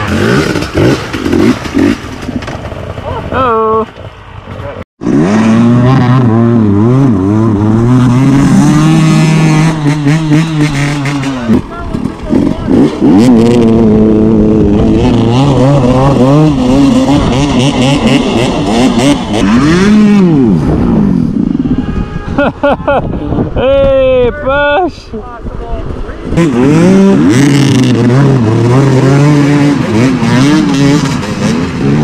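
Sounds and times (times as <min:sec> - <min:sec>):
dirt bike engines revving: 0:00.0 - 0:32.0.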